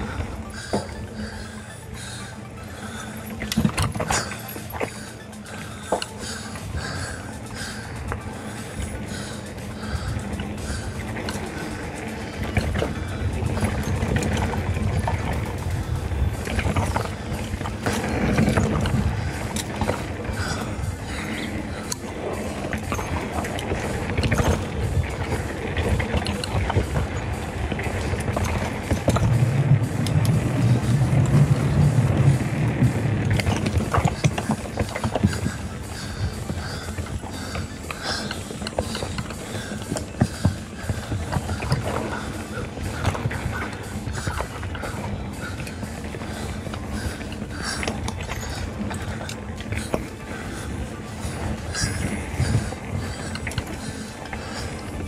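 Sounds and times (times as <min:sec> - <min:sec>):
bike tyres crunching over dirt: 0:00.0 - 0:55.0
tyres drumming on wooden boardwalk: 0:02.8 - 0:55.0
wind on microphone: 0:09.8 - 0:55.0.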